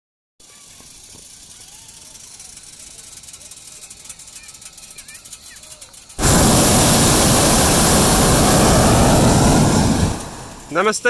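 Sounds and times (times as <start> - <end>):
faint distant voices: 0.4 - 6.2
steady airy hiss: 6.0 - 11.0.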